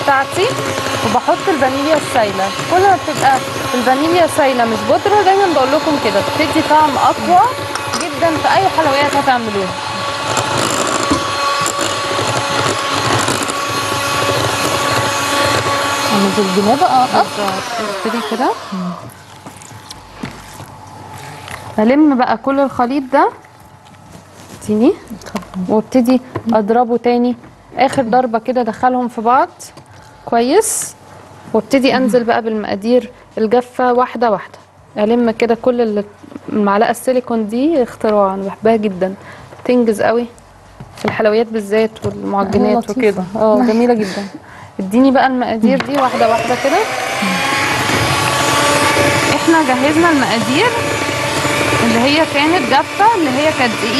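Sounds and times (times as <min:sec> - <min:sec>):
electric hand mixer whirring: 0:00.0 - 0:23.4, 0:44.9 - 0:53.9
spatula scraping mixing bowl: 0:00.0 - 0:24.8, 0:45.6 - 0:53.9.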